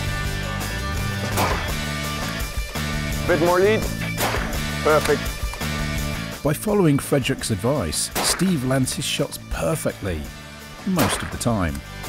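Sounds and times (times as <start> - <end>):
background music with bass line: 0.0 - 12.0
rifle shot: 1.4 - 1.7.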